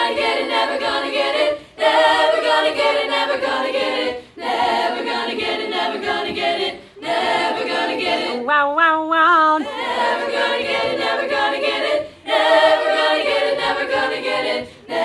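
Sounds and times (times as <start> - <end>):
choir singing a cappella: 0.0 - 8.5, 9.6 - 15.0.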